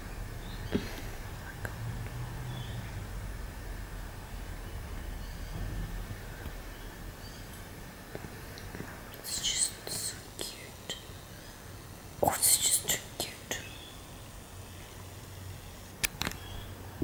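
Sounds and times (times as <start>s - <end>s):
soft whispering: 0.6s - 2.2s, 9.1s - 11.2s, 12.2s - 13.8s.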